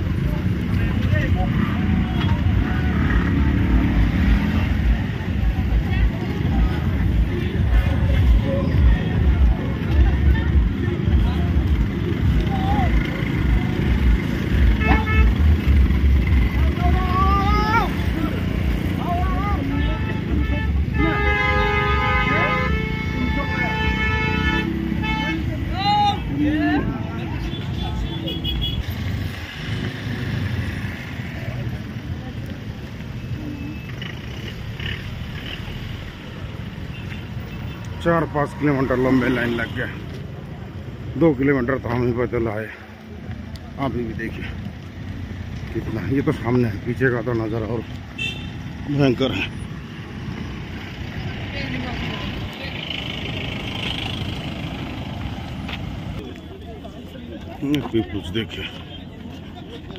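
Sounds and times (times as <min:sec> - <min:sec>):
people's voices: 0:00.0 - 0:28.9, 0:29.6 - 0:59.9
vehicle horn: 0:14.6 - 0:15.6, 0:19.7 - 0:25.7, 0:27.4 - 0:28.8, 0:48.2 - 0:48.6.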